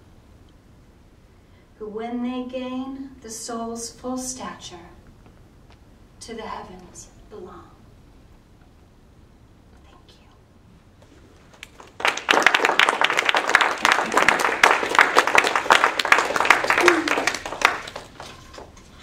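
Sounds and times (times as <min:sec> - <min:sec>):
audience applauding: 0:11.6 - 0:18.8.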